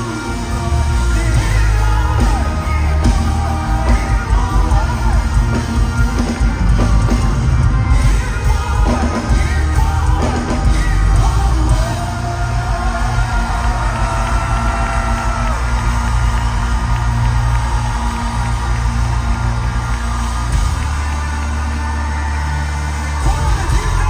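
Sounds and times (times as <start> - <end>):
person singing into microphone: 0.0 - 6.2, 7.8 - 15.3
bass guitar: 0.0 - 24.0
keyboards: 0.0 - 24.0.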